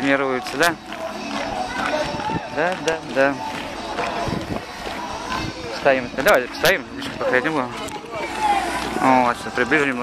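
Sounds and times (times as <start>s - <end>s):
distant crowd voices: 0.0s - 10.0s
faint music: 0.0s - 10.0s.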